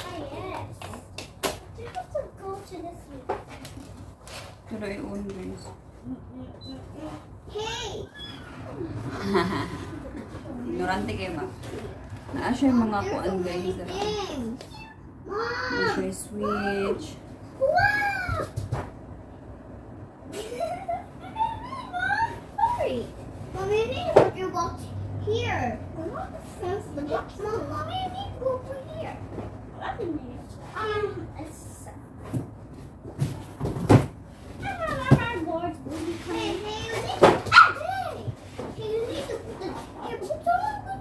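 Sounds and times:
children's high-pitched voices: 14.0 - 16.7, 17.6 - 18.6, 20.3 - 32.0, 34.6 - 41.0.

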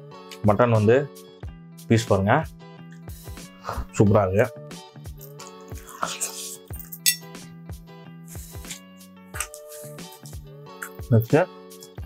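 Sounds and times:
background music sustained notes: 0.0 - 12.0
bright clink: 6.8 - 7.4.

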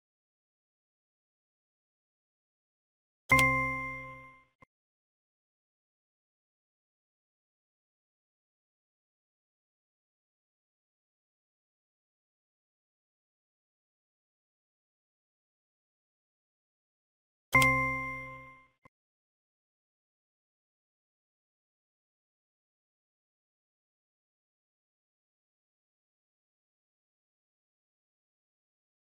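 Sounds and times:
electronic bell-like ding: 3.3 - 4.6, 17.6 - 18.7.

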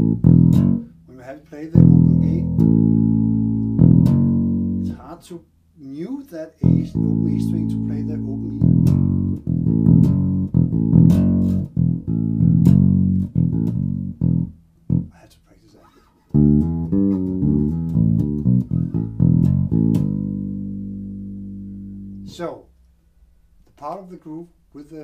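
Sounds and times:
electric bass groove: 0.0 - 1.1, 1.7 - 5.1, 6.6 - 15.2, 16.2 - 22.4.

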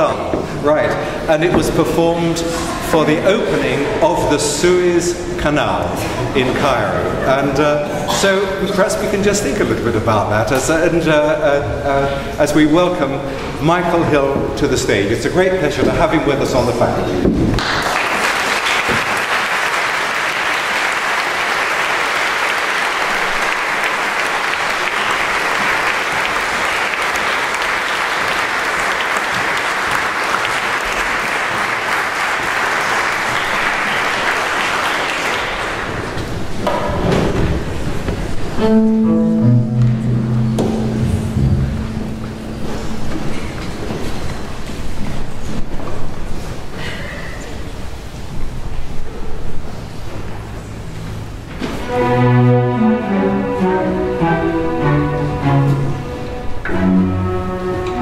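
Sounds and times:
audience applauding: 17.5 - 36.5
bowed strings tuning: 38.5 - 43.8, 51.6 - 58.0.

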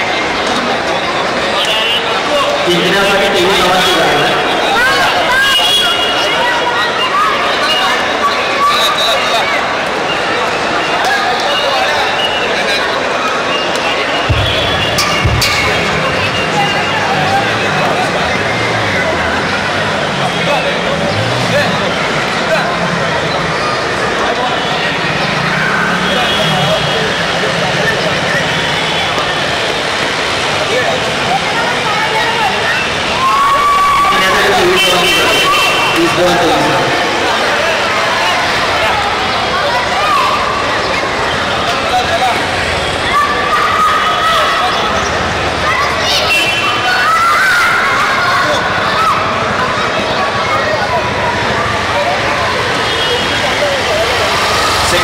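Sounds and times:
distant voices: 0.0 - 55.0
loud outdoor background noise: 0.0 - 55.0
loud steady background noise: 0.0 - 55.0.

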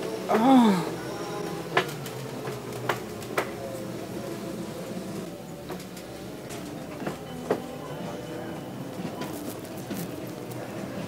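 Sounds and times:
low hum of store interior: 0.0 - 11.0.

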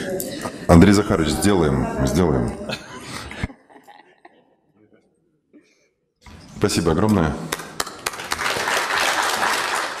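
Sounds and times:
audience applauding: 7.5 - 10.0.

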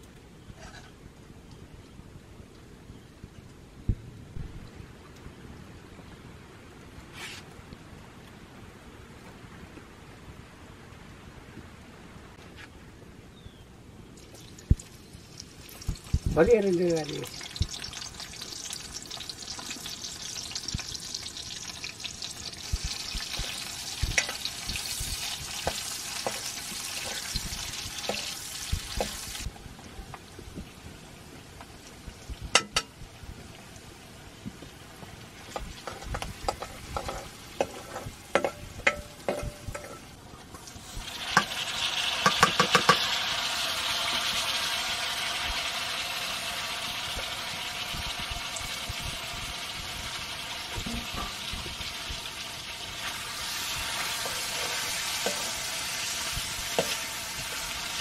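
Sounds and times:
meat sizzling in a wok: 14.5 - 29.6, 34.9 - 40.0, 40.6 - 58.0
metal spoon knocking in pan: 32.5 - 32.9, 35.6 - 40.0, 42.2 - 43.0.

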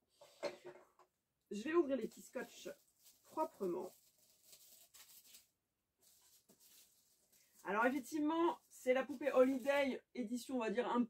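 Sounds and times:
faint scratching: 2.0 - 9.8.

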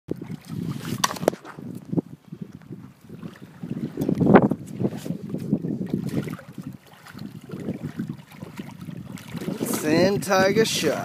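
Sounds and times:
water lapping and sloshing: 0.1 - 11.0
wind buffeting microphone: 0.1 - 11.0.

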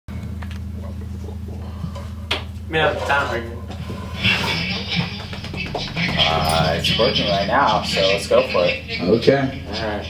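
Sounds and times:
guitar amplifier hum: 0.1 - 10.0.

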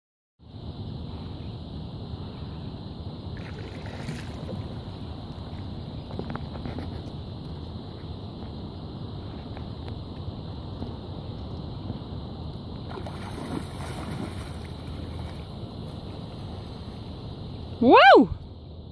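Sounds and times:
wind rumbling on microphone: 0.4 - 18.9
faint water splashes: 3.3 - 7.1, 12.8 - 17.3.

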